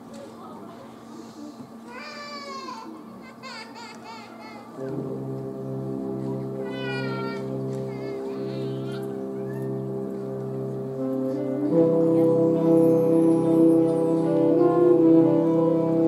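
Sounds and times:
concert band playing: 4.8s - 16.0s.

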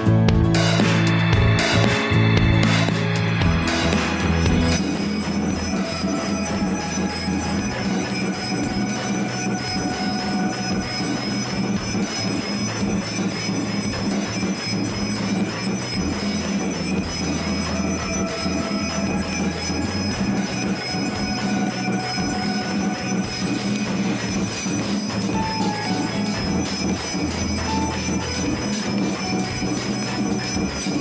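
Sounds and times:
bells ringing: 0.0s - 31.0s
low pulsing beat: 0.0s - 31.0s
rhythmic percussive clatter: 0.0s - 31.0s.

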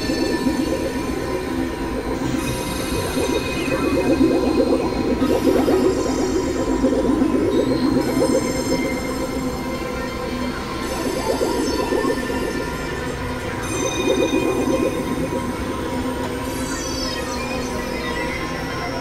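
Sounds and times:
synthesizer drone music: 0.0s - 17.2s.

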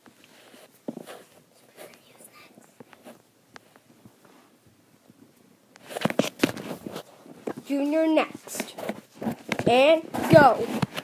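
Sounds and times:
plush toys rustling: 0.3s - 3.3s, 5.8s - 11.0s.

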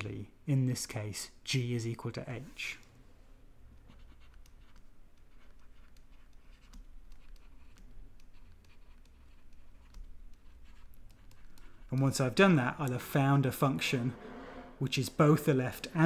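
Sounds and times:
stylus tapping and scratching on screen: 2.4s - 16.0s.

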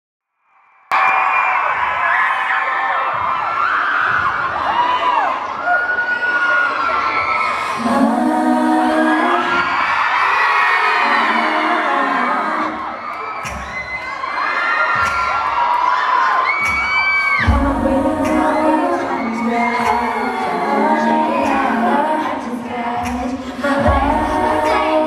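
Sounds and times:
crowd screaming and cheering: 0.7s - 25.0s
female vocal group singing: 7.5s - 13.2s, 17.2s - 25.0s.

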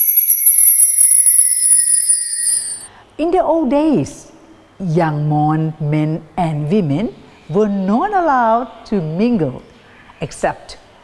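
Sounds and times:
shimmering bell-like chime: 0.0s - 2.9s.

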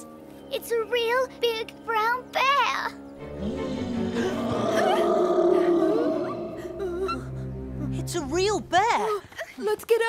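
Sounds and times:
bear roaring: 3.2s - 7.5s.

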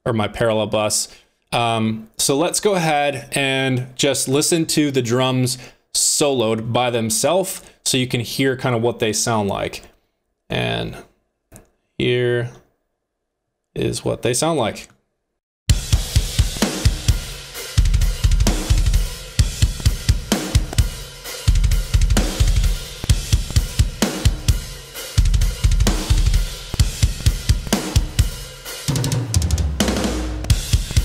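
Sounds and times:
rapid kick drum strokes: 15.7s - 31.0s.

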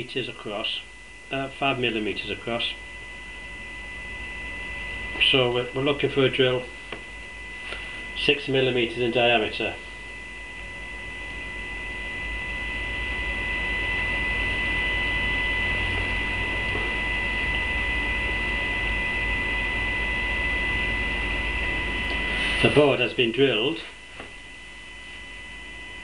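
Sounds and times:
electrical mains hum: 0.0s - 26.0s
high whine tones: 0.0s - 26.0s.

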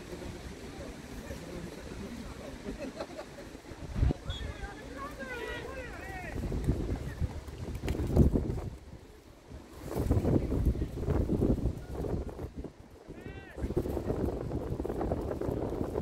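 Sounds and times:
wind buffeting microphone: 3.8s - 16.0s.

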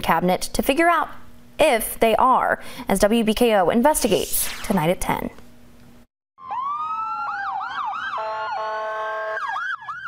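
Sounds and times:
steady blaring siren tone: 6.4s - 10.0s
wailing siren: 6.4s - 10.0s
yelping siren: 6.4s - 10.0s.

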